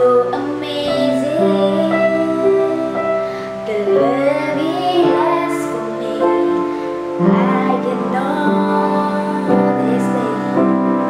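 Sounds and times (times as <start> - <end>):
piano chords: 0.0 - 11.0
woman singing: 0.0 - 11.0.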